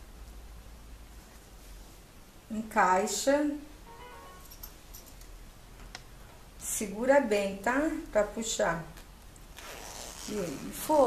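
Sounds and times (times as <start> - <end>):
zipper slider clicking: 9.6 - 10.7.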